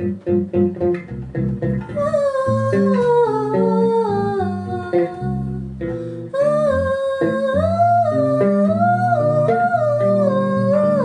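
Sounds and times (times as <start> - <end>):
plucked electric guitar notes: 0.0 - 11.0
woman singing: 1.9 - 11.0.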